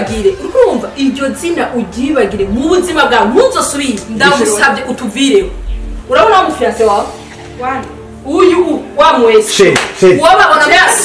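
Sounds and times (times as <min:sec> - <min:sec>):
woman speaking heatedly: 0:00.0 - 0:09.4, 0:10.2 - 0:11.0.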